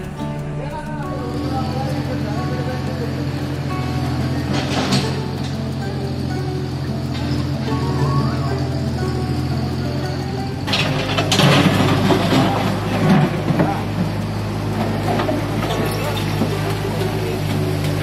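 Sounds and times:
machine clatter: 0.0s - 18.0s
mini excavator diesel engine: 0.0s - 18.0s
music: 0.0s - 18.0s
voices: 0.0s - 18.0s.

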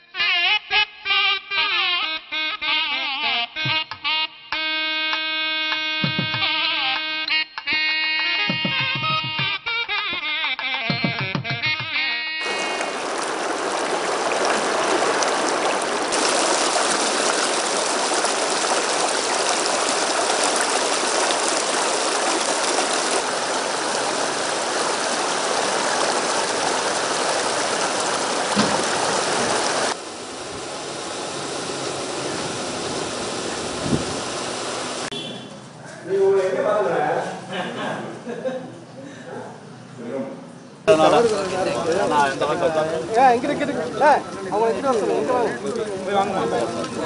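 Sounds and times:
music: 0.0s - 12.4s
river water pouring over rocks: 12.4s - 35.1s, 40.9s - 47.0s.

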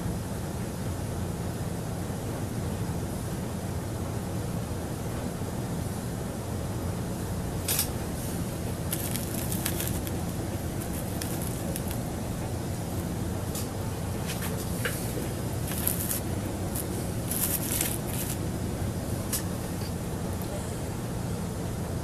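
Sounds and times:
steady low hum: 0.0s - 22.0s
faint clicks and crackles: 8.7s - 13.7s, 14.3s - 18.4s.

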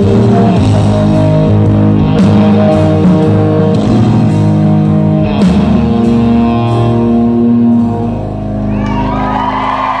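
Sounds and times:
audience cheering and whooping: 8.6s - 10.0s.

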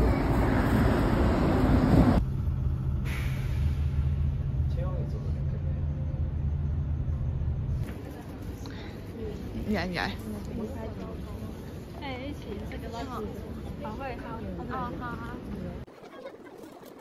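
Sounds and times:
bus interior low rumble: 0.0s - 15.9s
noisy outdoor sound: 0.0s - 17.0s.

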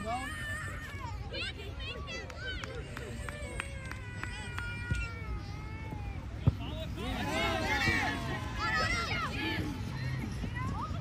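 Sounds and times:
players shouting and calling: 0.0s - 11.0s.

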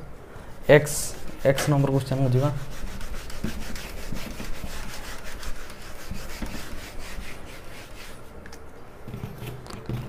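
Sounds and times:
eraser scrubbing a whiteboard: 0.6s - 8.3s.

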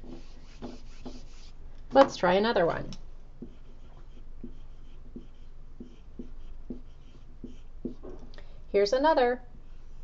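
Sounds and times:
marker writing on whiteboard: 0.0s - 2.1s, 3.4s - 8.2s.

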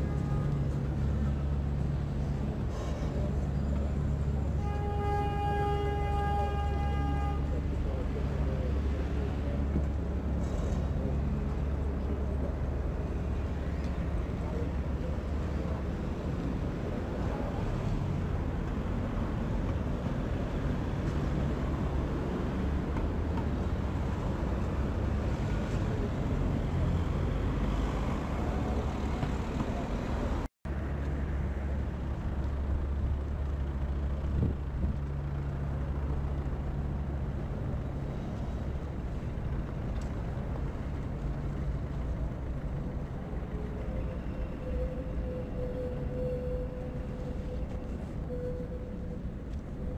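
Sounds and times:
traffic hum and rumble: 0.0s - 49.9s.

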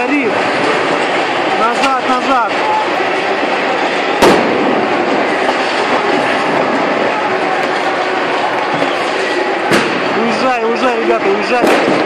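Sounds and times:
loud fire din: 0.0s - 12.0s
sharp explosive bang: 4.2s - 7.0s, 8.8s - 10.2s, 11.6s - 12.0s.

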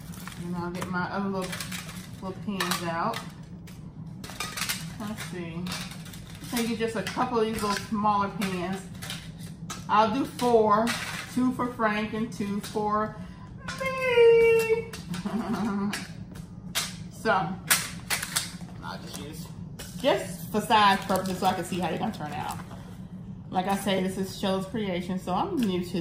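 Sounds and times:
person chuckling: 15.1s - 16.0s.

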